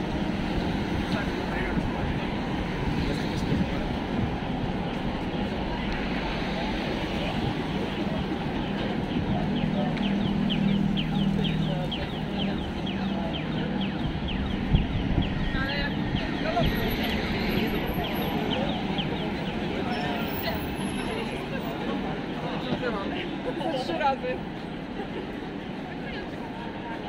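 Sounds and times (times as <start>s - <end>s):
passers-by talking: 0.0s - 27.0s
traffic: 0.0s - 27.0s.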